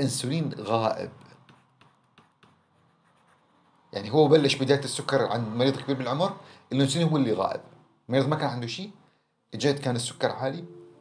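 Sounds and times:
man speaking: 0:00.0 - 0:01.2, 0:04.0 - 0:10.8
stylus tapping on a tablet: 0:01.3 - 0:02.8.

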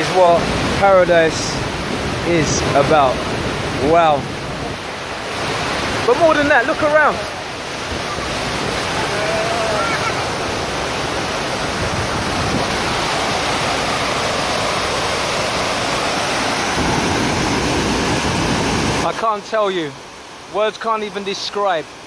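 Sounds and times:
waterfall rushing: 0:00.0 - 0:22.0.

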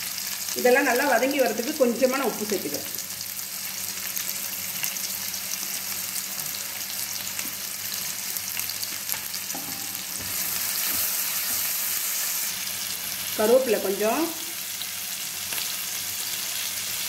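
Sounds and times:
vegetables sizzling in hot oil: 0:00.0 - 0:17.0.

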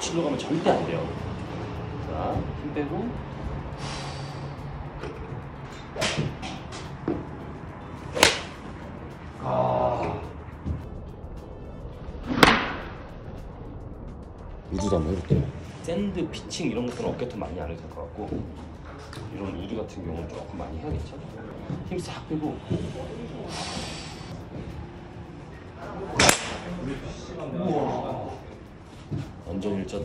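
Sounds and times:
man exhaling breathily: 0:03.8 - 0:04.7
golf club swish: 0:08.0 - 0:08.8
golf ball strike crack: 0:08.1 - 0:08.6, 0:12.3 - 0:13.0, 0:26.2 - 0:26.7.

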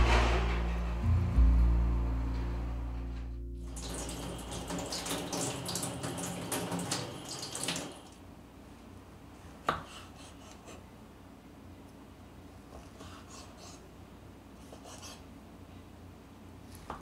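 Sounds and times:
background music: 0:00.0 - 0:05.0
tap water splashing on hands: 0:03.7 - 0:08.0.

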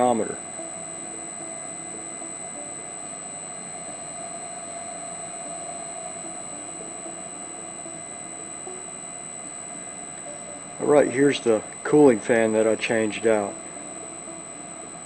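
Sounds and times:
electric motor whine: 0:00.0 - 0:15.0
low motor hum: 0:00.0 - 0:15.0.

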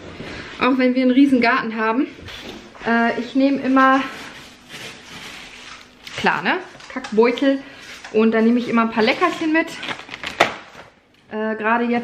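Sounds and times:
soft rustling and handling: 0:02.3 - 0:10.4.

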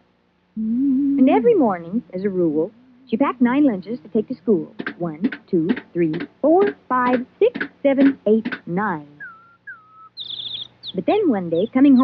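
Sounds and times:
cartoon bird whistle and chirps: 0:09.1 - 0:11.1.

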